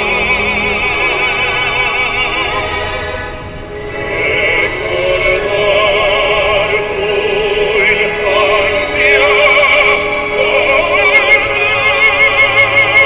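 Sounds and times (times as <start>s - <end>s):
person singing long held notes: 0.0s - 13.0s.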